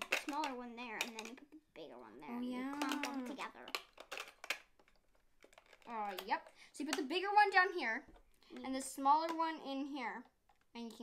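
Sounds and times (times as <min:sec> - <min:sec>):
plastic clicks and taps: 0:00.0 - 0:01.5, 0:02.7 - 0:07.2, 0:08.1 - 0:09.6
child's voice: 0:00.2 - 0:03.8, 0:05.8 - 0:11.0.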